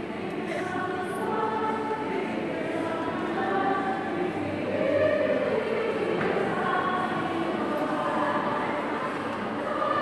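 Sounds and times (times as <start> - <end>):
church choir singing a hymn: 0.0 - 10.0.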